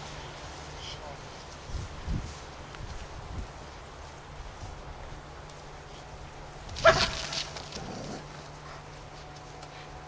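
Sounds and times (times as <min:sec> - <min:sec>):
dog barking: 0:06.8 - 0:07.2.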